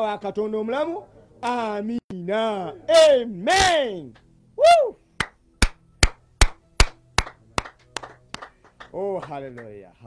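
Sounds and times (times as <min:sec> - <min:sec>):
hand clapping: 0:05.2 - 0:09.9.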